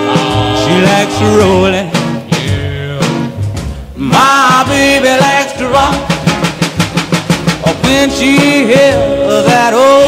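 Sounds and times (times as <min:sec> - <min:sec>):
rock and roll band music: 0:00.0 - 0:10.0
sharp drum hit: 0:00.0 - 0:10.0.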